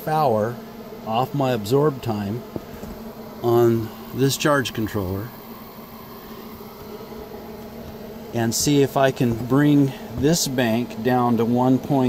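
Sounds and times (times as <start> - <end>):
faint hiss: 0.0 - 12.0
low buzzing hum: 0.0 - 12.0.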